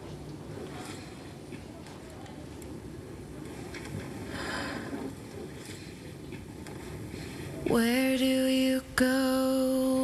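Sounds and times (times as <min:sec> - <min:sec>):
low rumble and hiss: 0:00.0 - 0:10.0
woman's soft breath: 0:04.3 - 0:05.1.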